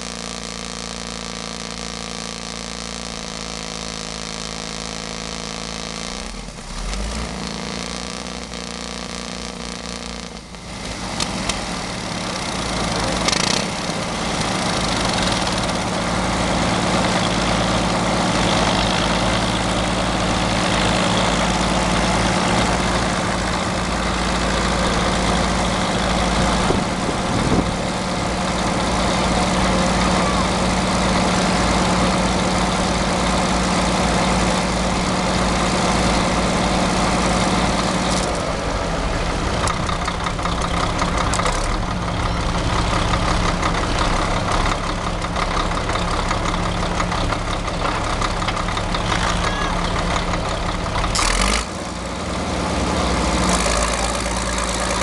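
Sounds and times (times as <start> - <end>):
diesel engine idling: 0.0 - 55.0.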